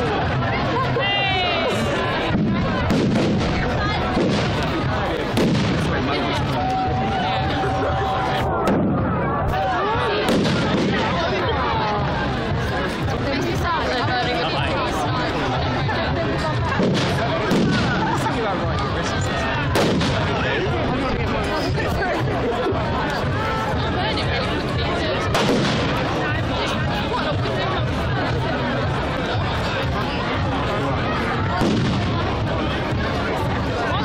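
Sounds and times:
crowd chatter: 0.0 - 34.0
firework bangs: 2.3 - 6.0, 10.2 - 11.2, 16.8 - 18.2, 19.7 - 20.4, 25.3 - 26.2, 31.6 - 32.5
firework bang: 16.8 - 18.1, 19.8 - 20.3, 25.3 - 26.1, 31.6 - 32.3.

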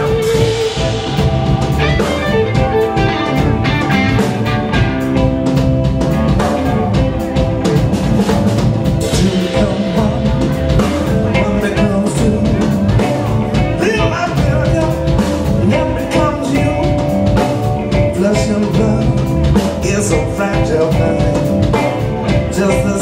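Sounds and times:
drum kit: 0.0 - 23.0
electric guitars: 0.0 - 23.0.

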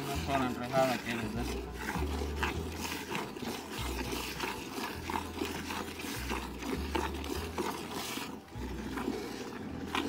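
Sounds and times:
milk squirting into metal bucket: 0.0 - 10.0.

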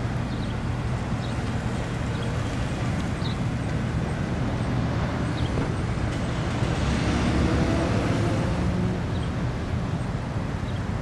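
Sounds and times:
road traffic rumble: 0.0 - 11.0
vehicle passing: 3.8 - 9.6.

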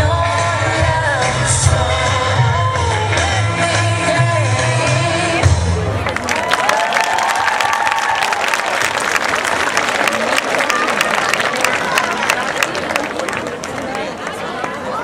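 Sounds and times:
audience applauding: 6.0 - 15.0
shouts and cheering voices: 6.2 - 9.0, 9.9 - 13.3.

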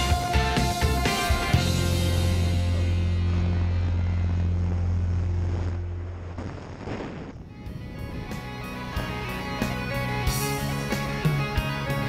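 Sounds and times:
rock music: 0.0 - 6.4, 7.4 - 12.0.

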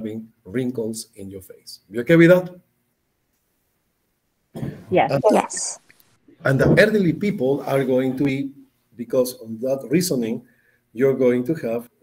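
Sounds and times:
short cough: 4.6 - 4.9
person speaking: 4.7 - 6.8.

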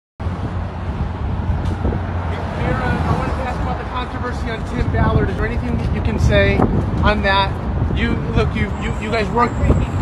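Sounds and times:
street traffic rumble: 0.2 - 10.0.

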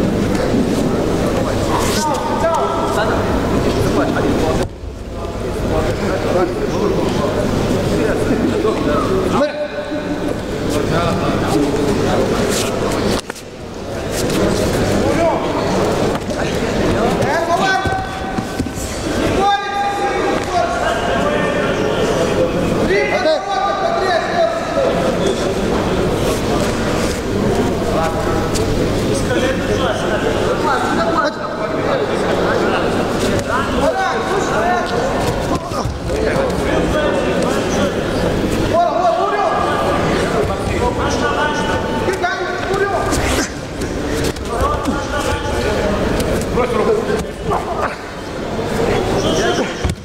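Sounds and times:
voices echoing in a hall: 0.0 - 50.0.

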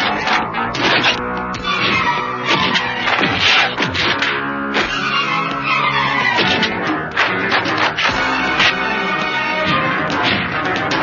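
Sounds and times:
sustained instrumental score: 0.0 - 11.0.

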